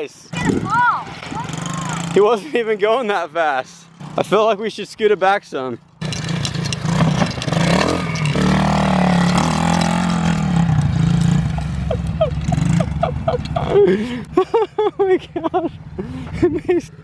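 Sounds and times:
dirt bike engine revving: 0.3s - 2.6s, 3.6s - 4.5s, 6.0s - 14.2s.

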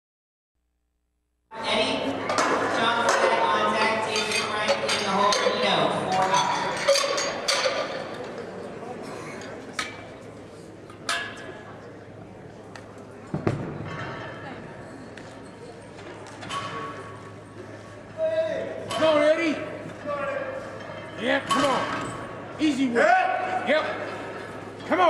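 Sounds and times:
voices chattering: 1.5s - 13.7s
weight plates clinking and clanking: 2.3s - 8.5s, 19.9s - 22.4s.

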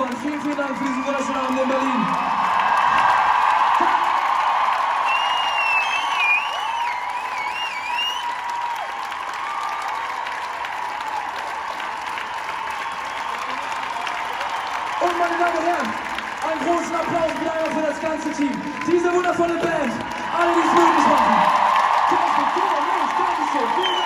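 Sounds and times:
crowd applauding and cheering: 0.0s - 24.0s.

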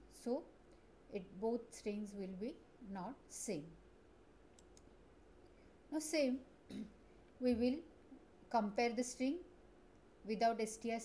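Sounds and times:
woman speaking: 0.2s - 0.4s, 1.2s - 3.8s, 5.9s - 6.4s, 7.4s - 7.9s, 8.5s - 9.5s, 10.3s - 11.0s.

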